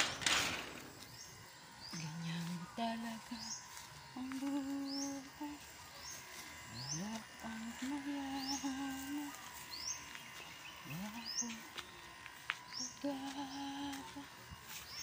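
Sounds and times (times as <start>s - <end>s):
bird chirping: 0.0s - 14.0s
person humming: 1.9s - 5.8s, 6.6s - 9.5s, 10.8s - 11.8s, 12.7s - 14.5s.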